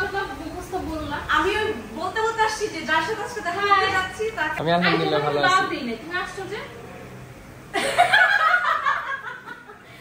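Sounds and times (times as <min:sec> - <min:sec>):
women laughing: 0:07.7 - 0:10.0.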